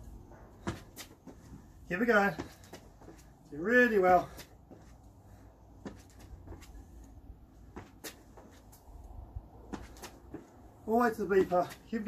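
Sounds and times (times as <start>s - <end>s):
shoes tapping on stone paving: 0.6s - 7.0s, 7.6s - 8.8s, 9.6s - 12.0s.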